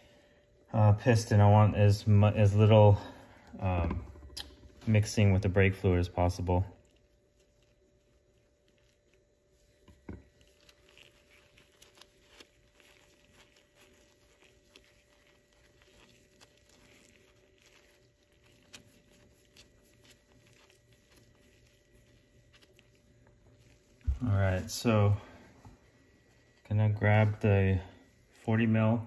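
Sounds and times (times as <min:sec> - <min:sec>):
gloved hands rustling and clicking: 0:03.6 - 0:27.5.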